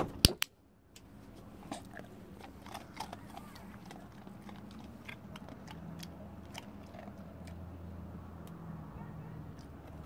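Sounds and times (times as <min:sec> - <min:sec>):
dog crunching a treat: 0:01.0 - 0:08.6, 0:09.4 - 0:10.0.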